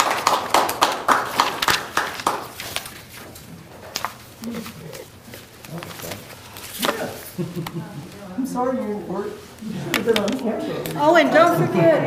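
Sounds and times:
small audience applauding: 0.0 - 3.0
faint voices: 4.4 - 12.0.

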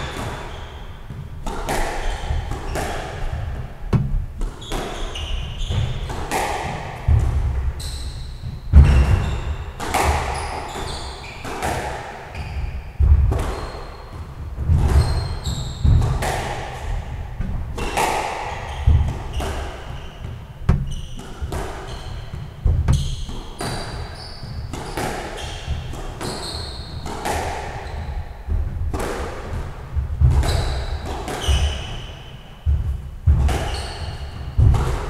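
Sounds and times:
shoes squeaking on wooden floor: 0.0 - 28.8, 30.2 - 35.0
squash ball hitting rackets and walls: 0.0 - 35.0
heavy footfalls: 2.3 - 4.4, 8.4 - 10.4, 13.0 - 13.5, 20.6 - 21.6, 22.4 - 23.2, 32.6 - 33.7, 34.5 - 35.0.

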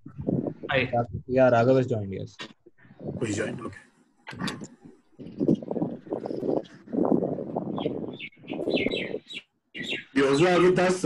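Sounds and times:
garbled talk over video call: 0.1 - 7.0, 10.0 - 11.0.

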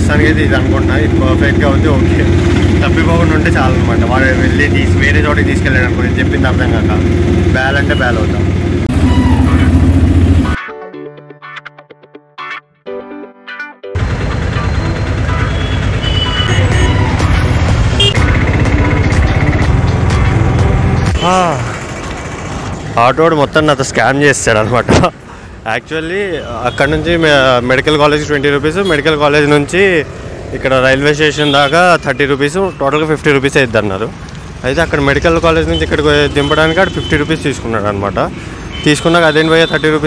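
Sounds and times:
man talking: 0.0 - 8.5, 23.0 - 40.0
road noise: 0.0 - 10.6, 14.0 - 40.0
vehicle engine drone: 0.0 - 10.6, 14.0 - 23.8.

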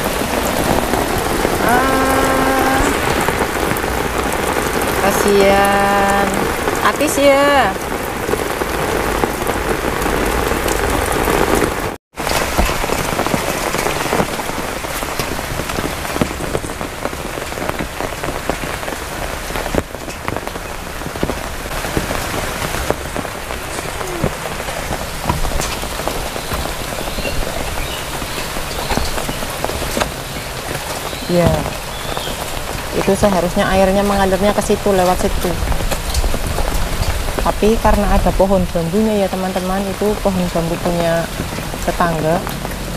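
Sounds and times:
heavy rain on wet ground: 0.0 - 42.9
individual raindrops: 0.0 - 42.9.

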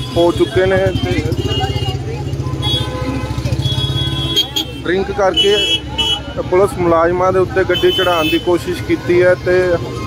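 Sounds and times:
street crowd voices: 0.0 - 10.0.

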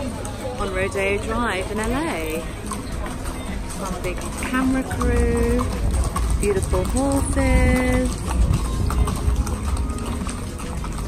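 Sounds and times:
hooves clip-clopping on pavement: 0.0 - 11.0.

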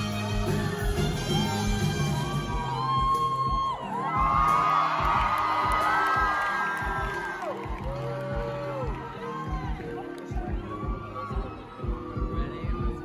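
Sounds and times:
audience whooping and screaming: 2.0 - 13.0.

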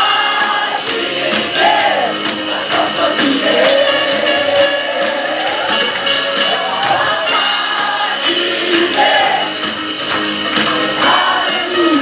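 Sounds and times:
singers on microphones: 0.0 - 9.9, 10.7 - 12.0
band with steady beat: 0.0 - 12.0.

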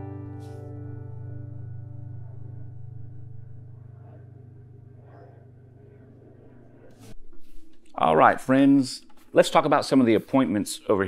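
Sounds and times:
acoustic guitar chord ringing: 0.0 - 4.7.

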